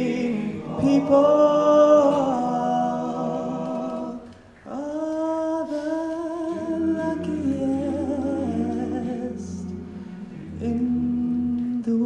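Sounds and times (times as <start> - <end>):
male choir singing chord: 0.0 - 4.3, 6.6 - 11.8
low bass note: 7.1 - 11.9.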